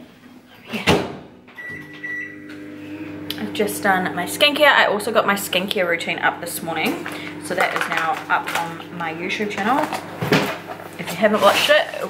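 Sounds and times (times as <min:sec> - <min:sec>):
microwave oven humming: 0:01.4 - 0:12.0.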